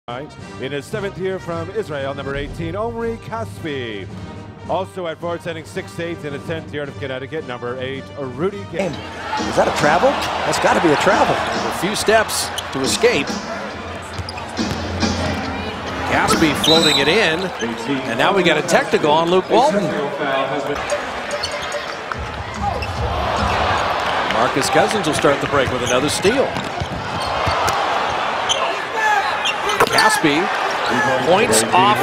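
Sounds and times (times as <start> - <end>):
arena crowd noise: 8.8 - 32.0
basketball bouncing on hardwood: 26.6 - 27.6.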